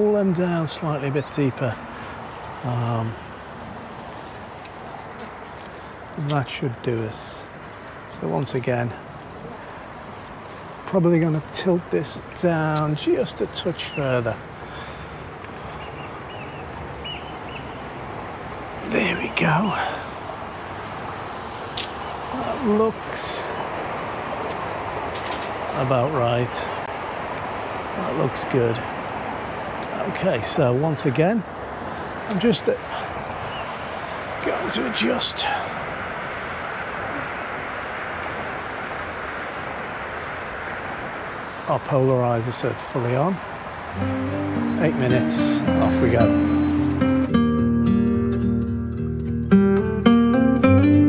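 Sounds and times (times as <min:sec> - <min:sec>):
outdoor background noise: 0:00.0 - 0:51.0
road traffic rushing: 0:00.0 - 0:51.0
bird chirping: 0:13.6 - 0:18.0, 0:32.9 - 0:34.7, 0:43.9 - 0:47.3.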